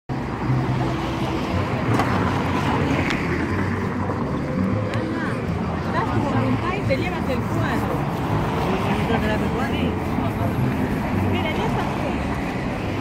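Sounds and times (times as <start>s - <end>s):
traffic noise: 0.1s - 13.0s
people's voices: 0.4s - 13.0s.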